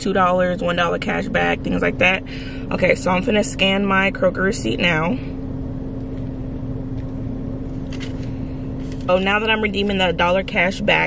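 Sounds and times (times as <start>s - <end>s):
car engine idling inside cabin: 0.0s - 11.0s
constant low tone: 0.0s - 11.0s.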